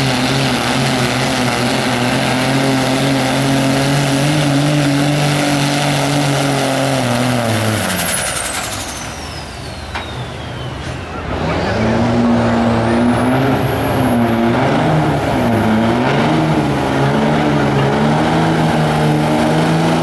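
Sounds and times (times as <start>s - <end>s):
turbo whistle spooling down: 0.0s - 11.1s
diesel engine running flat out: 0.0s - 20.0s.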